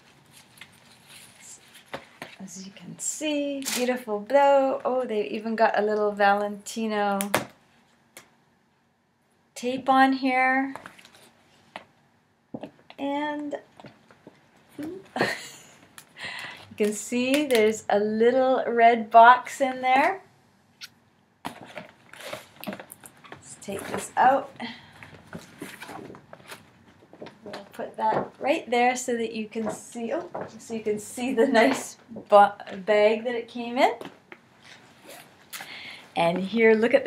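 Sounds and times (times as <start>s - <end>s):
woman speaking: 2.4s - 7.4s, 9.6s - 10.8s, 13.0s - 13.6s, 16.8s - 20.2s, 23.4s - 24.8s, 27.4s - 34.1s, 36.2s - 37.0s.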